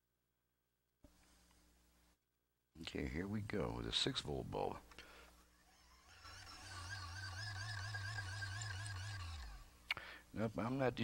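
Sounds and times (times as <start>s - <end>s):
hand-cranked generator hum and whine: 5.0s - 9.8s.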